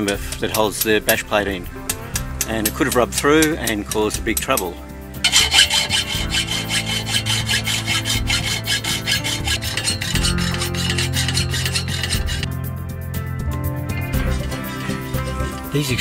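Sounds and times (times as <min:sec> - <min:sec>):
hacksaw cutting metal: 0:00.0 - 0:00.9, 0:01.9 - 0:12.5, 0:14.2 - 0:16.0
background music: 0:00.0 - 0:16.0.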